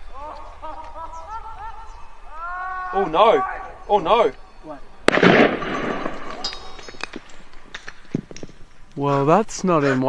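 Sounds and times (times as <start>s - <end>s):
firework bang: 5.0s - 6.4s.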